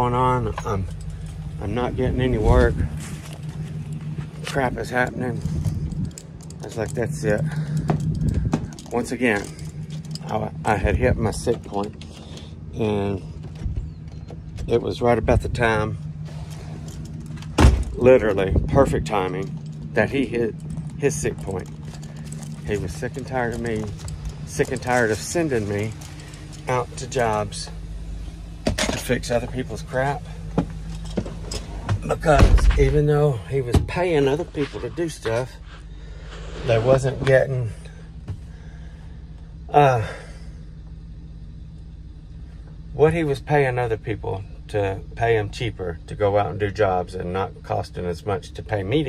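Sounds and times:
man talking: 0.0s - 1.0s, 1.6s - 3.0s, 4.4s - 5.6s, 6.6s - 7.8s, 8.8s - 12.0s, 12.7s - 13.3s, 14.6s - 16.0s, 17.9s - 21.7s, 22.6s - 27.8s, 28.9s - 30.3s, 32.0s - 35.6s, 36.6s - 37.9s, 39.7s - 40.3s, 43.0s - 49.0s
motor vehicle humming: 0.0s - 49.0s
van engine idling: 0.0s - 49.0s.

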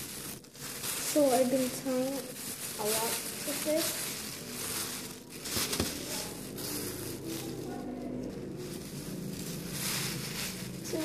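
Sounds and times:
cellophane crinkling and rustling: 0.0s - 11.0s
sharp cellophane crackle: 0.0s - 11.0s.

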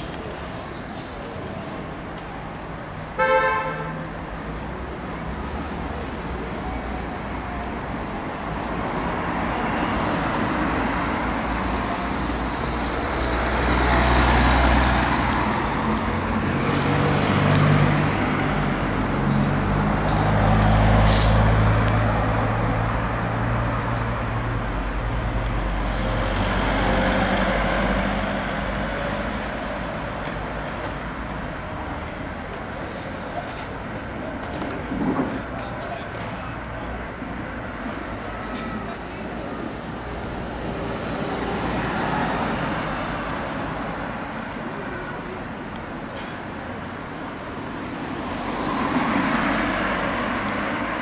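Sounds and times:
vehicles passing: 0.0s - 51.0s
brief high hisses: 21.0s - 21.5s.

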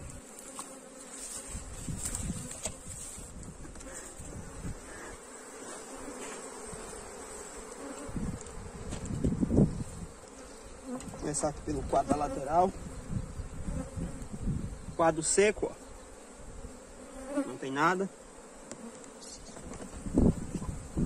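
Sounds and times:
thumps of hive being handled: 0.0s - 12.5s, 18.6s - 21.0s
bees buzzing: 0.0s - 21.0s.

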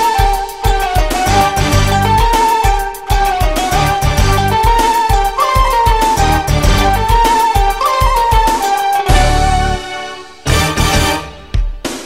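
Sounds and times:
instrumental pop music: 0.0s - 12.0s.

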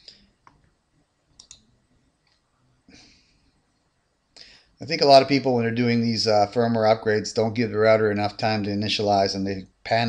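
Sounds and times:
computer mouse clicks: 0.0s - 2.4s.

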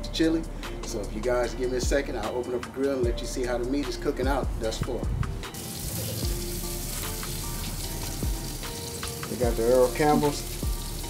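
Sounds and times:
background music: 0.0s - 11.0s
sausages sizzling on a grill: 5.5s - 11.0s.

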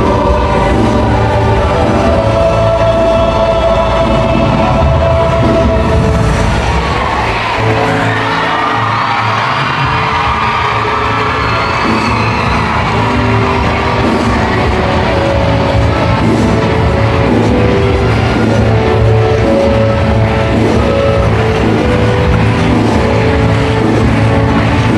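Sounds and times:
live music over loudspeakers: 0.0s - 24.9s.

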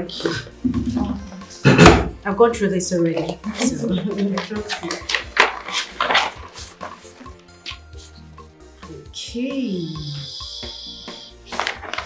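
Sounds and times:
soft background music: 0.0s - 12.0s
paper envelope rustling: 4.1s - 7.8s, 11.5s - 12.0s.

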